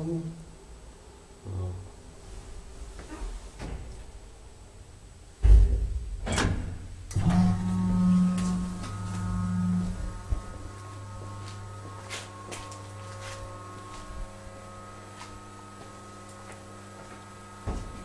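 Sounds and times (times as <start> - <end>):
elevator drive humming: 6.3 - 18.0.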